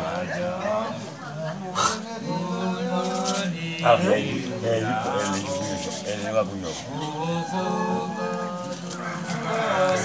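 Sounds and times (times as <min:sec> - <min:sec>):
people talking over each other: 0:00.0 - 0:10.0.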